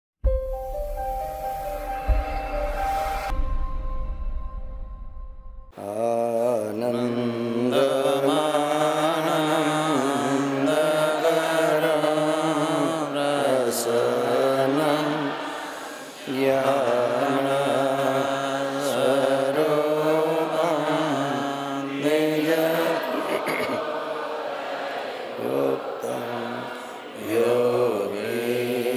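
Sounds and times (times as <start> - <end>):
slow devotional chanting: 5.7 - 28.9.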